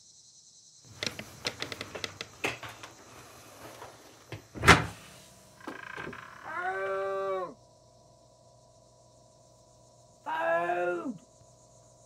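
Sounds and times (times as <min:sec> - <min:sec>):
faint steady hum: 0:00.2 - 0:12.0
long creak dropping in pitch: 0:00.9 - 0:02.4, 0:05.6 - 0:06.9.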